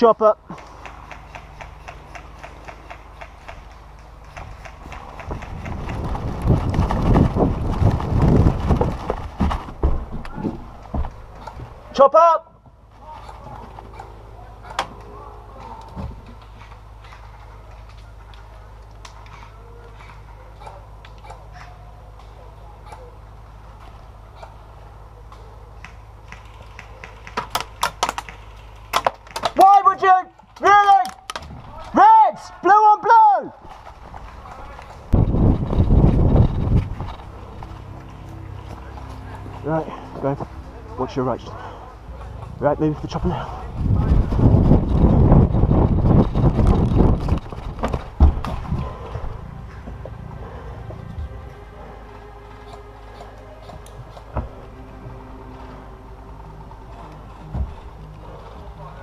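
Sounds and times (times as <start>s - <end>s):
rustling: 3.8s - 11.8s
footfalls: 4.4s - 11.8s, 43.4s - 50.2s.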